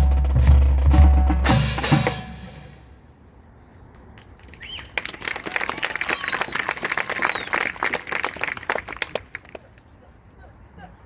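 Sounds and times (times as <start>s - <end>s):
band playing: 0.0s - 2.9s
audience applauding: 4.5s - 9.8s
long high whistle: 5.8s - 7.6s.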